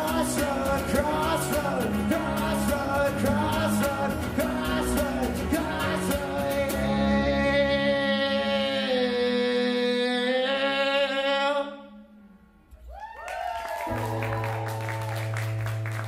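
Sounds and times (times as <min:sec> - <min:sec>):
man singing: 0:00.0 - 0:12.3.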